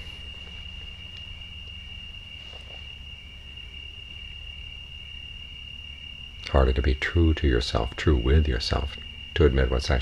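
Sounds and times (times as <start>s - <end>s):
crickets trilling: 0.0s - 10.0s
low background hum: 0.0s - 10.0s.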